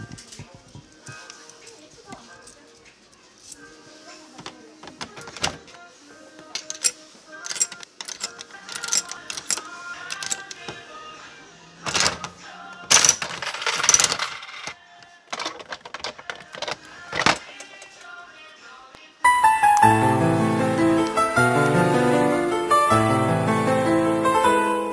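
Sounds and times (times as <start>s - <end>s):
faint background music: 0.0s - 24.9s
coins clicking into slot: 6.6s - 10.6s, 11.9s - 14.8s
capsules clattering: 12.9s - 17.7s.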